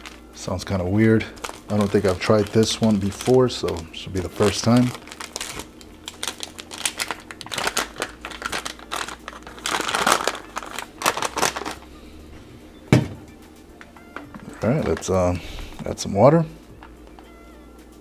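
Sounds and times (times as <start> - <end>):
plastic pouch crinkling: 0.0 - 12.2, 14.2 - 15.9
plastic pouch tearing: 1.1 - 11.9.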